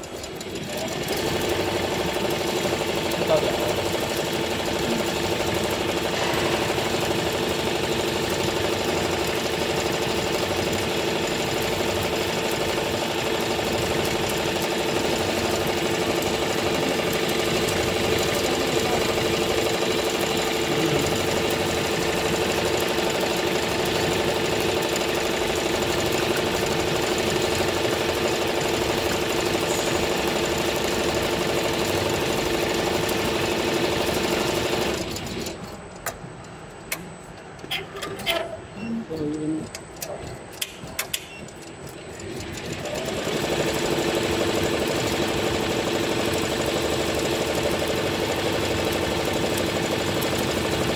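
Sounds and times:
embroidery machine stitching: 0.0s - 35.6s, 41.1s - 50.9s.

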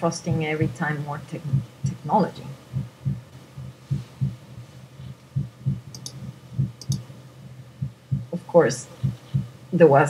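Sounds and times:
slow heartbeat thumps: 1.4s - 9.7s.

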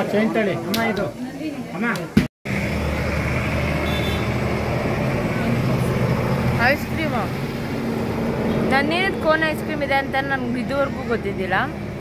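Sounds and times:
vehicle engine hum: 2.5s - 12.0s.

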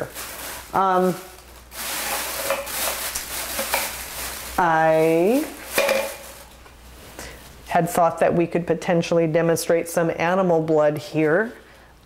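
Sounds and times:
gloved hands rubbing and rustling: 0.0s - 7.7s.

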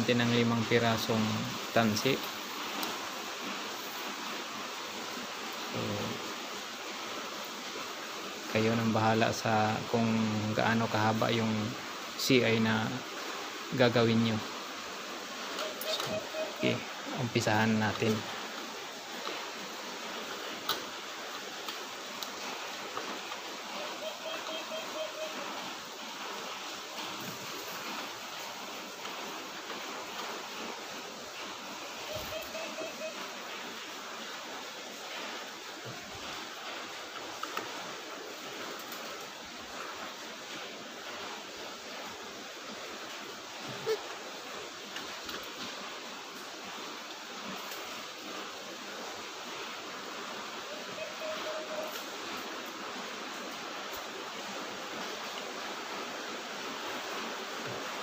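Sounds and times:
heavy rain hissing: 0.0s - 58.0s.

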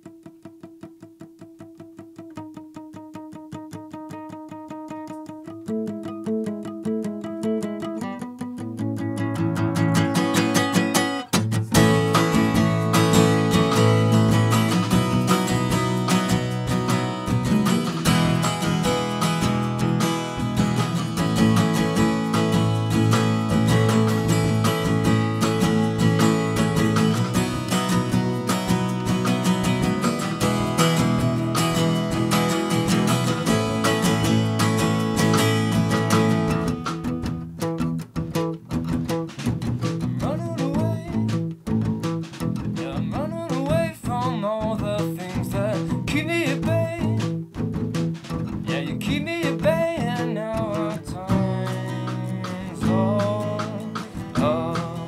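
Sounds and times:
strummed acoustic guitar: 0.0s - 55.0s
drums keeping steady beat: 9.8s - 55.0s.

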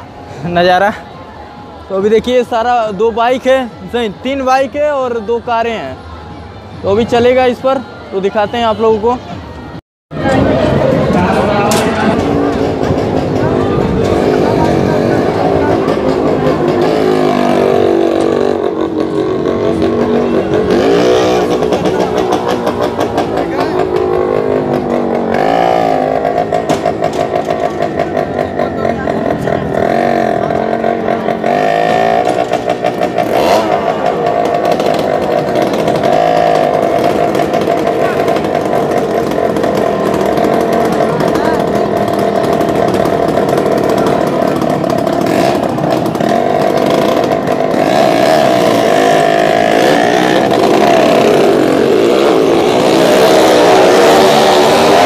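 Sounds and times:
motorcycle engines revving: 0.0s - 55.0s.

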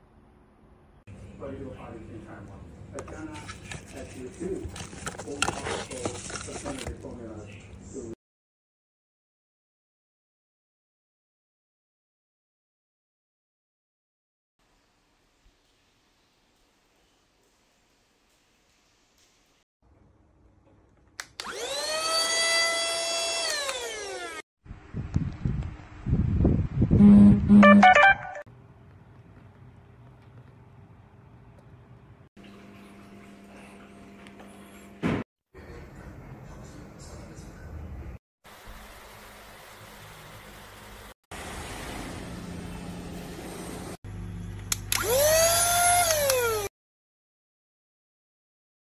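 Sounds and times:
handheld vacuum motor whining: 21.4s - 24.4s, 44.9s - 46.7s.

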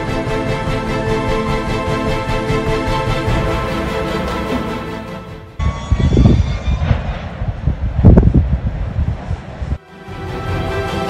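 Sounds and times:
background music: 0.0s - 6.4s, 9.8s - 11.0s.

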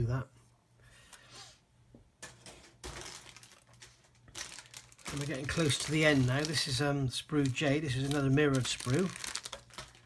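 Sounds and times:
plastic bag crinkling: 2.8s - 10.0s.

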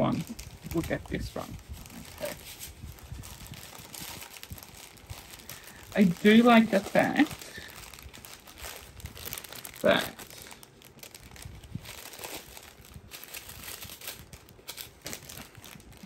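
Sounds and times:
plastic bags crinkling: 0.0s - 16.0s.

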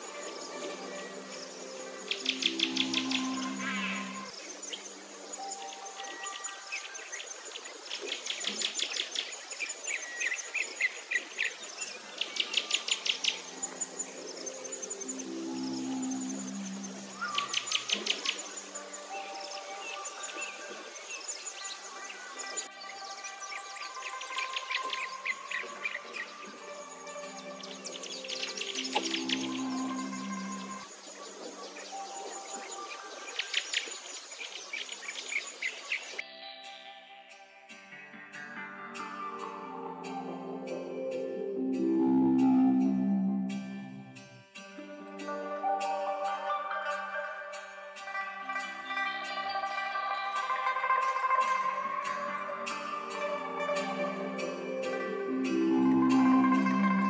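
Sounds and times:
very high chirp: 0.0s - 34.0s, 45.2s - 57.0s
rapid bird trills: 0.0s - 36.2s
calm background music: 0.0s - 57.0s.

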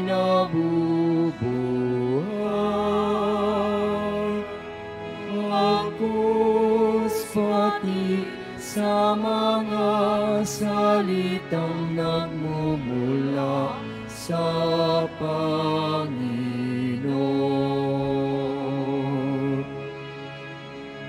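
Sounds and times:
person singing a slow hymn: 0.0s - 20.0s
low steady accompaniment: 0.0s - 21.0s.

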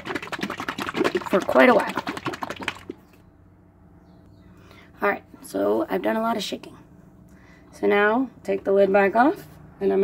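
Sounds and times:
plastic bottle being shaken: 0.0s - 3.1s.

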